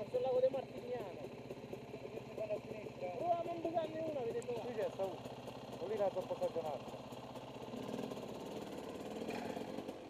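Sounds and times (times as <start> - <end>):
dirt bike engine idling: 0.0 - 10.0.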